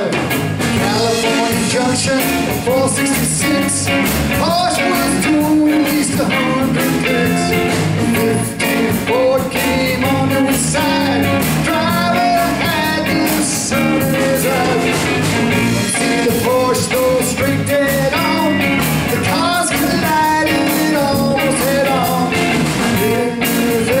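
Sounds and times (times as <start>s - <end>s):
electric guitar bending notes: 0.0s - 24.0s
live rock band playing: 0.0s - 24.0s.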